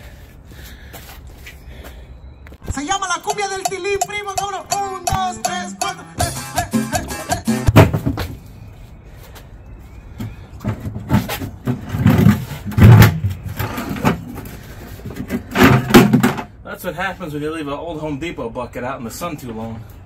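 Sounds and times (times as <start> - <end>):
heavy thumps of tire on rim: 7.7 - 8.4.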